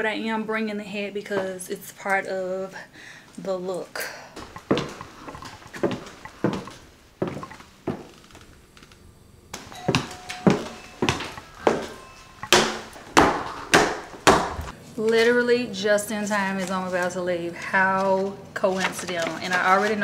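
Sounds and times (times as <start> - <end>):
heeled footsteps on hardwood floor: 4.4 - 8.2, 9.6 - 14.7.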